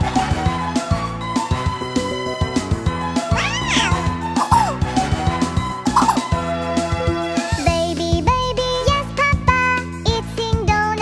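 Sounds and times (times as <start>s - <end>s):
cheerful children's music: 0.0s - 11.0s
cartoon meow-like call: 3.4s - 4.7s.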